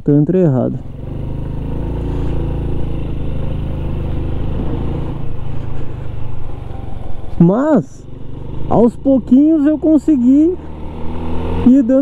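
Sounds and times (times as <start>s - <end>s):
motorbike engine running: 0.7s - 12.0s.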